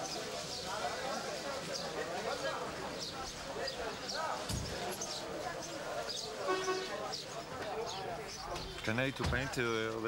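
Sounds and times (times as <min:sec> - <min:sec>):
men talking: 0:07.4 - 0:10.0.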